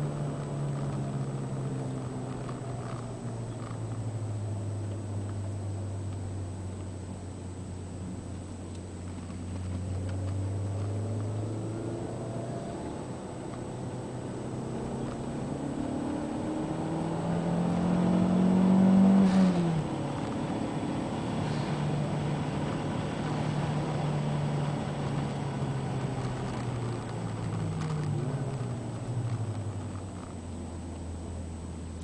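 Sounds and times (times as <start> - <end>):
car engine accelerating: 0.0 - 32.0.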